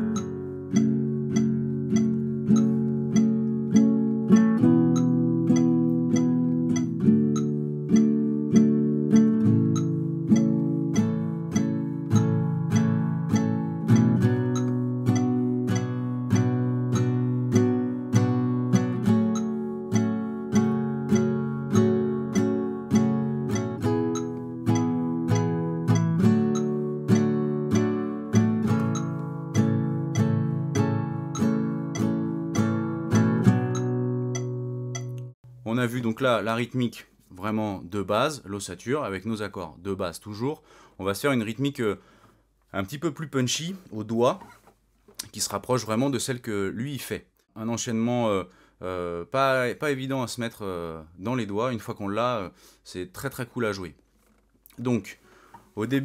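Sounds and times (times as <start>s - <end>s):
metronome clicking: 0.0s - 35.4s
acoustic guitar strumming: 0.0s - 35.6s.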